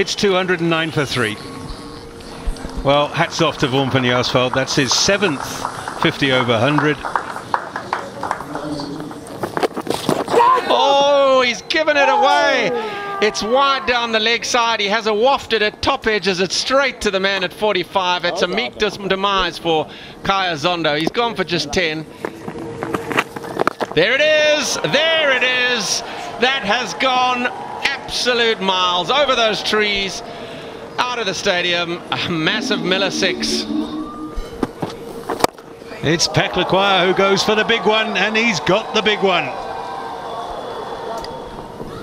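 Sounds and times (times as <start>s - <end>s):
crowd hubbub: 0.8s - 10.6s, 21.6s - 37.9s
crowd murmur: 31.8s - 36.1s.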